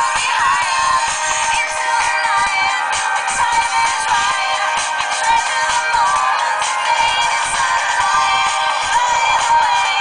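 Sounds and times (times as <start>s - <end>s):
pop song from phone loudspeaker: 0.0s - 10.0s.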